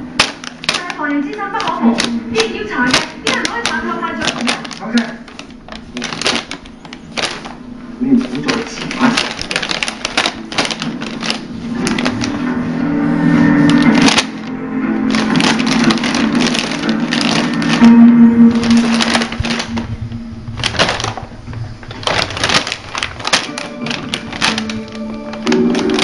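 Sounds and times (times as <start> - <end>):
background music with low notes: 0.0 - 26.0
plastic bag crinkling: 0.0 - 26.0.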